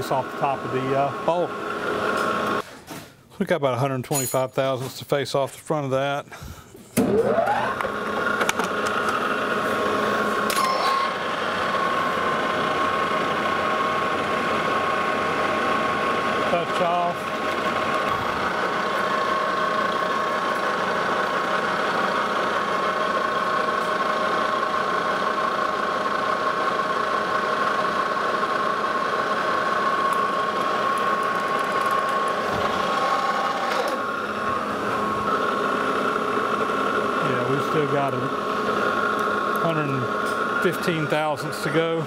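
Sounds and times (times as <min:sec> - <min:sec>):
metal lathe gear whine: 0:07.3 - 0:42.0
lathe tool cutting steel: 0:07.4 - 0:42.0.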